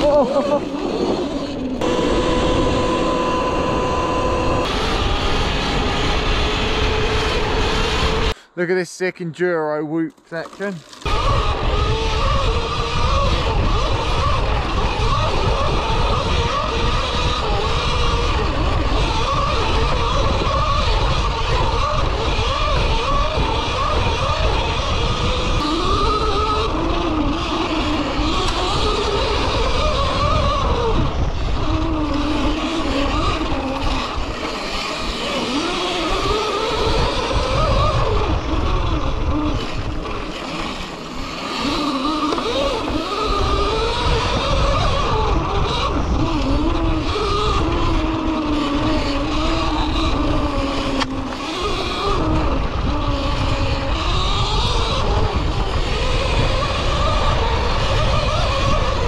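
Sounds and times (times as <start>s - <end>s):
electric motor whine: 0.0s - 8.4s, 10.5s - 59.0s
wind and tyre noise: 0.0s - 9.2s, 10.1s - 59.0s.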